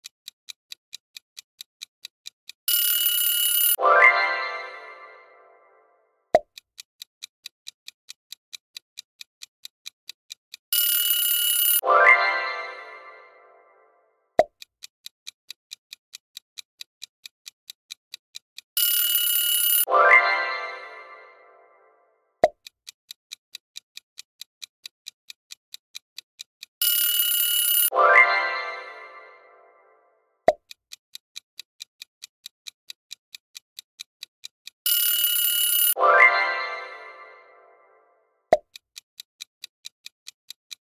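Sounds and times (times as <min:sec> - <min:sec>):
countdown clock ticking: 0:00.0 - 0:40.9
alarm-like ring: 0:02.7 - 0:05.5, 0:10.8 - 0:13.6, 0:18.8 - 0:21.6, 0:26.8 - 0:30.0, 0:34.9 - 0:38.0
chime: 0:03.1 - 0:05.8, 0:11.4 - 0:13.9, 0:19.0 - 0:22.0, 0:26.9 - 0:30.0, 0:34.9 - 0:38.1.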